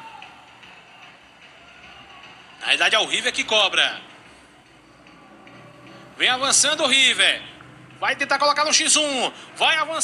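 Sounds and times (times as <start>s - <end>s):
distant indistinct voices: 0.0s - 9.6s.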